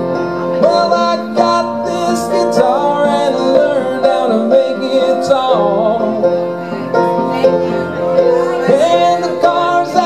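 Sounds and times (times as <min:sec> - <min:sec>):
upright piano chords: 0:00.0 - 0:10.0.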